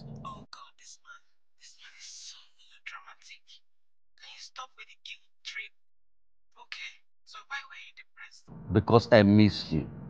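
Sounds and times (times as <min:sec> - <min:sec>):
person whispering: 0:00.0 - 0:03.6, 0:04.2 - 0:05.7, 0:06.6 - 0:08.5.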